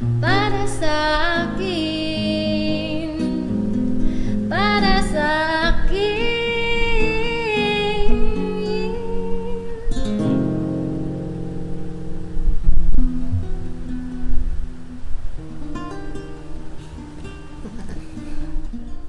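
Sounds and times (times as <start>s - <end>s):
woman singing: 0.0s - 10.3s
classical guitar plucking: 0.0s - 19.0s.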